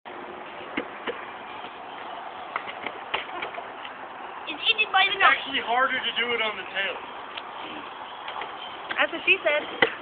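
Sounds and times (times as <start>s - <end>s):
skateboard wheels rolling on asphalt: 0.1s - 10.0s.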